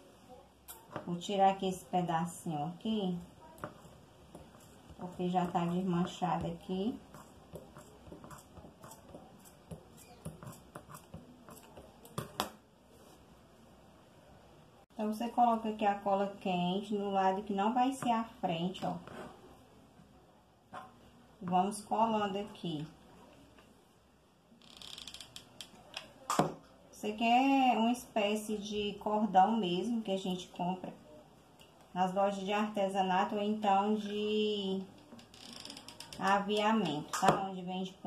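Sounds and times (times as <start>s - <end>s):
scratchy rasp: 7.0s - 11.8s.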